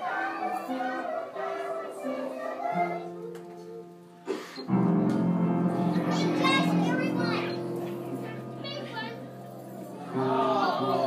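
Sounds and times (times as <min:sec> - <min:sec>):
children singing and calling out: 0:00.0 - 0:11.0
held accompaniment chord: 0:00.0 - 0:11.0.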